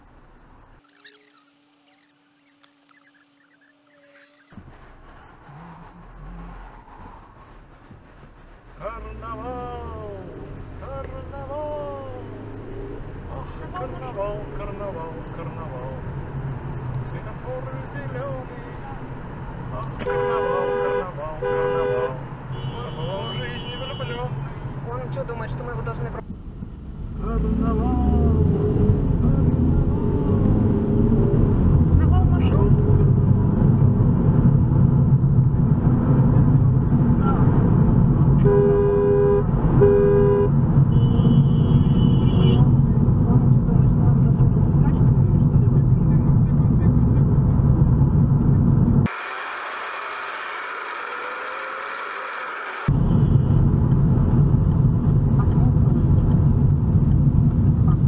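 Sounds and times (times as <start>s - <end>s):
car engine and tyres rumbling: 0.0s - 58.0s
car horn honks: 20.0s - 24.4s, 38.4s - 42.8s.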